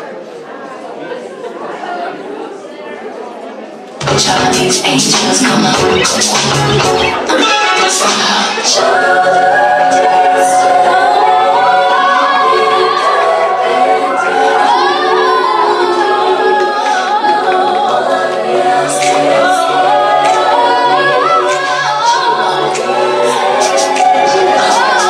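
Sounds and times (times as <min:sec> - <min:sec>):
group singing long held notes: 0:04.0 - 0:25.0.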